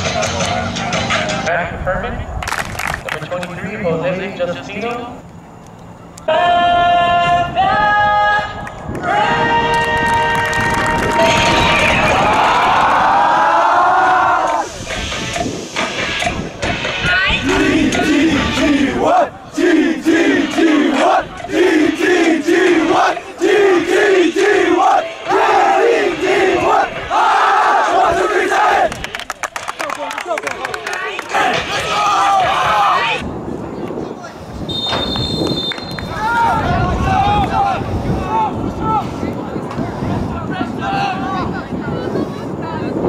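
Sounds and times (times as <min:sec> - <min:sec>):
rapid clapping: 0:02.4 - 0:03.6, 0:09.7 - 0:12.9, 0:28.9 - 0:31.5
rhythmic unison chant: 0:06.3 - 0:29.2, 0:31.1 - 0:33.2
many voices yelling: 0:09.0 - 0:14.7, 0:30.9 - 0:33.2, 0:36.1 - 0:39.2.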